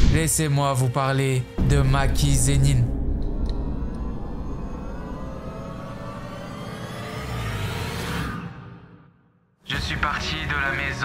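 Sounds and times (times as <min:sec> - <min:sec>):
low rumble: 0:01.6 - 0:08.1
synthetic rising sweep: 0:02.1 - 0:08.8.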